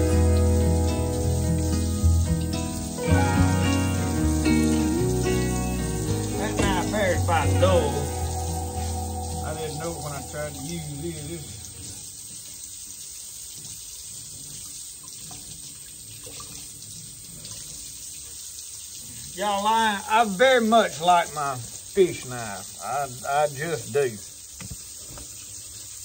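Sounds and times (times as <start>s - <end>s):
music with wavering notes: 0.0s - 12.0s.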